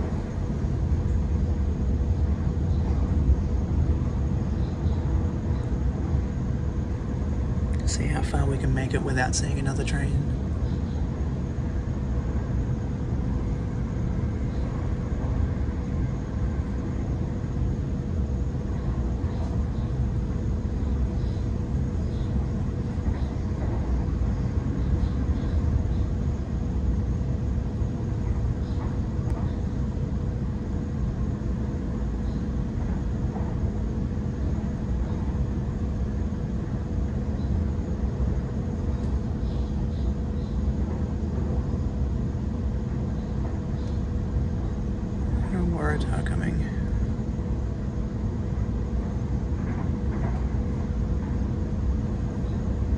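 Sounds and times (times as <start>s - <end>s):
train wheels rumbling on rail: 9.6s - 45.7s, 47.0s - 52.9s.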